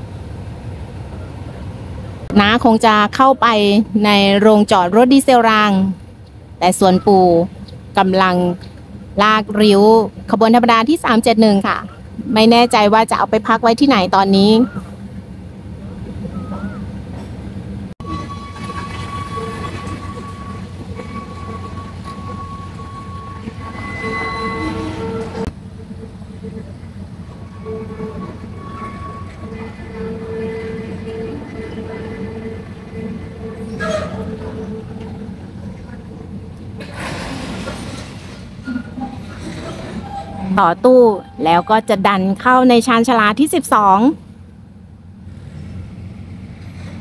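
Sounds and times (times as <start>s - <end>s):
diesel locomotive rumble: 0.0s - 47.0s
train clatter: 0.0s - 47.0s
pitched tones: 18.0s - 36.8s, 39.9s - 44.2s.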